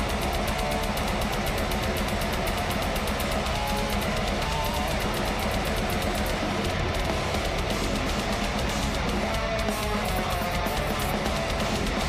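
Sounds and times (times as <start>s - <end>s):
distorted electric guitars: 0.0s - 12.0s
very fast drumming: 0.0s - 12.0s.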